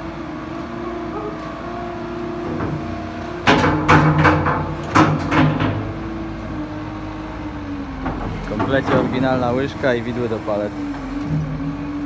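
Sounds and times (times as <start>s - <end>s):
diesel engine running: 0.0s - 12.0s
loud clanks and knocks: 2.4s - 6.2s, 8.0s - 9.6s, 10.9s - 11.6s.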